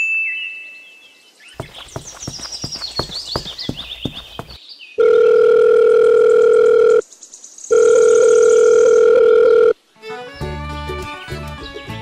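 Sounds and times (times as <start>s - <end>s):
telephone ringback tone: 5.0s - 7.0s, 7.7s - 9.8s
music: 9.9s - 12.0s.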